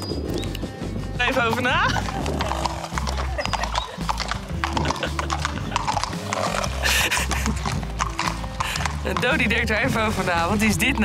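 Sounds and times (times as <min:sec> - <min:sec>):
music with repeating bass beat: 0:00.0 - 0:11.0
horse hooves clip-clopping on asphalt: 0:00.1 - 0:11.0.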